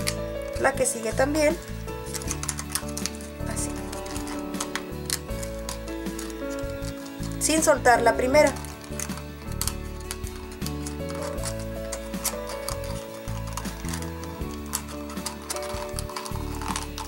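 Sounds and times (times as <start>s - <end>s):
instrumental pop music: 0.0s - 17.0s.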